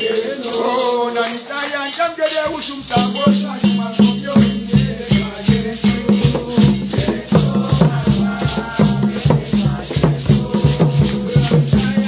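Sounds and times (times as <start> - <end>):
shaker rattling: 0.0 - 12.0
hand drums playing: 2.1 - 12.0.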